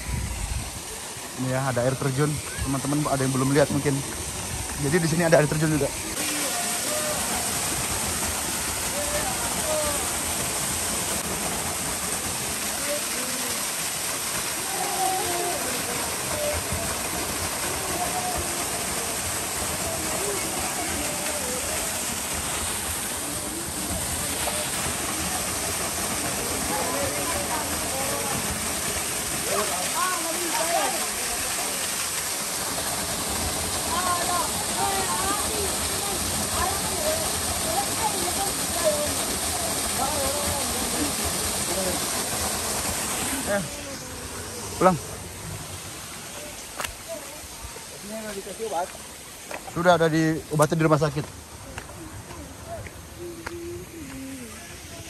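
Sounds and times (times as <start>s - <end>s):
small waterfall pouring onto rock: 0.0s - 55.0s.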